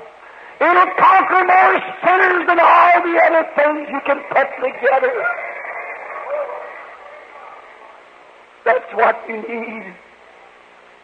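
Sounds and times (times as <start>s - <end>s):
man preaching in echoing hall: 0.4s - 7.6s.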